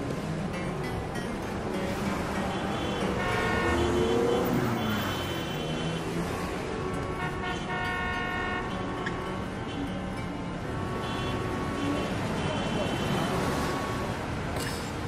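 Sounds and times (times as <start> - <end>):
street traffic noise: 0.0 - 15.0
car horns blasting: 2.4 - 6.1, 7.0 - 9.9.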